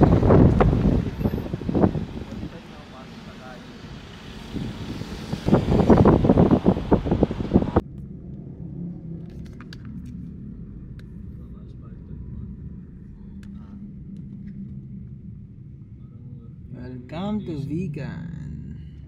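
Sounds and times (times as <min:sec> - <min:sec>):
wind buffeting microphone: 0:00.0 - 0:02.8, 0:04.4 - 0:07.8.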